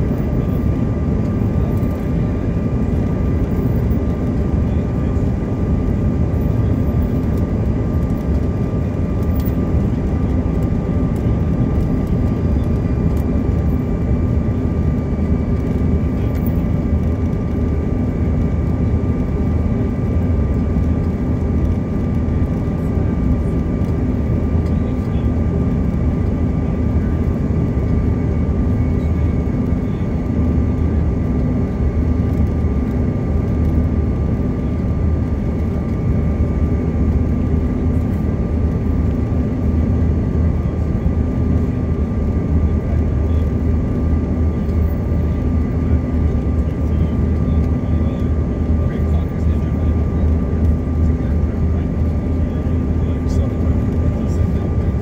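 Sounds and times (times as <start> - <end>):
jet engine cabin rumble: 0.0 - 55.0.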